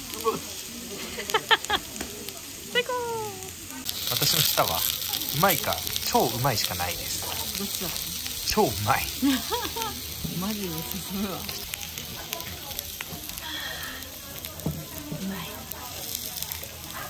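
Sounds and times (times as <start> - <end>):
meat and vegetables sizzling: 0.0 - 17.0
people talking: 0.0 - 17.0
person laughing: 9.2 - 10.0.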